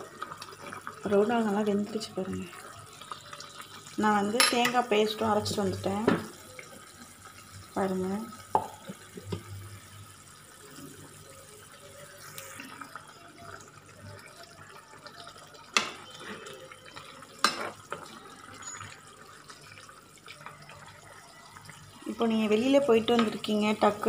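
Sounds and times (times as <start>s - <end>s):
water bubbling in a pan: 0.0s - 24.0s.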